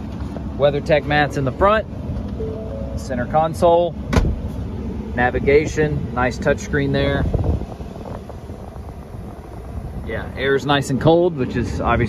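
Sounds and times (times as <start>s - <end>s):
air conditioning blowing: 0.0s - 12.0s
car cabin hum: 0.0s - 12.0s.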